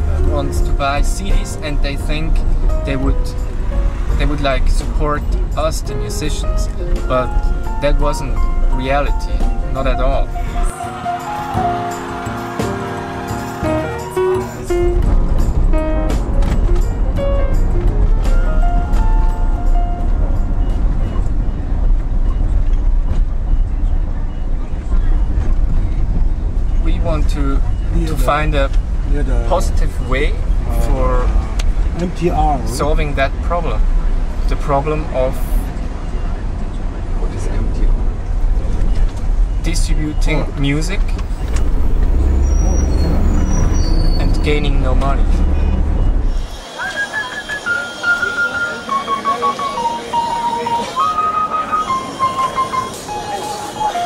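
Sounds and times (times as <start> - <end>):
music with long held notes: 0.0 - 21.8, 47.7 - 54.0
car rumble from inside cabin: 14.8 - 34.8, 35.6 - 46.5.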